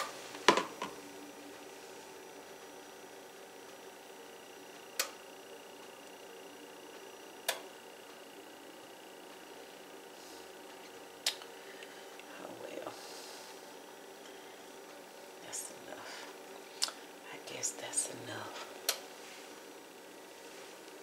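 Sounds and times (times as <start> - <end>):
faint kitchen hum: 0.0 - 21.0.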